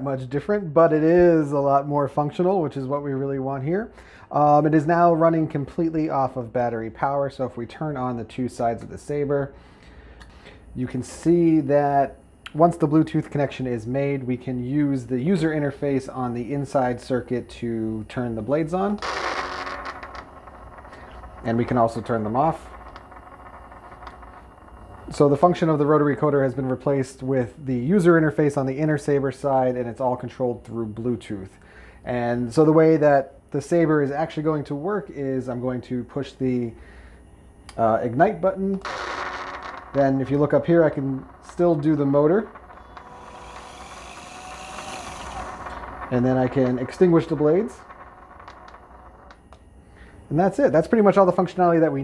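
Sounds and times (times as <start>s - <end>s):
faint steady hum: 0.0s - 52.0s
small electric motor running: 39.5s - 49.4s.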